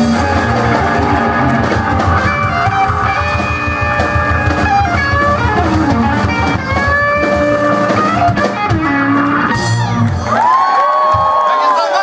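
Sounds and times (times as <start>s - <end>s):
electric blues band: 0.0s - 10.7s
crowd whooping and cheering: 0.0s - 12.0s.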